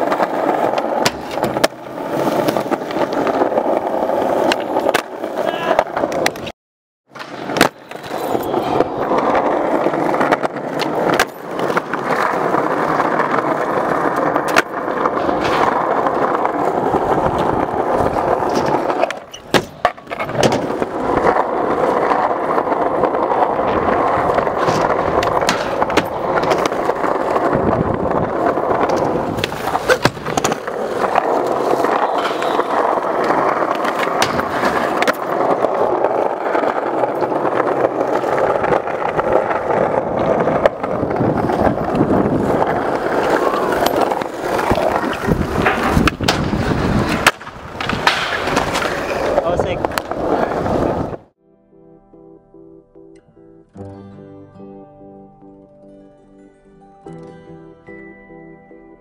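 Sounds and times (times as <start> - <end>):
skateboards clacking: 0.0 - 6.5, 7.1 - 51.2
skateboard wheels rolling on concrete: 0.0 - 51.4.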